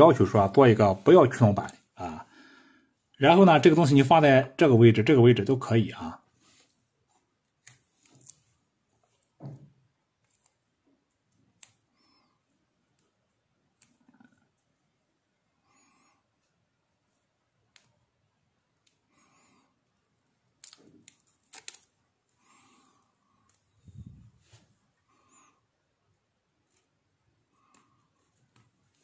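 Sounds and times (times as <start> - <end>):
soft rustles: 6.3 - 9.4, 23.8 - 24.9.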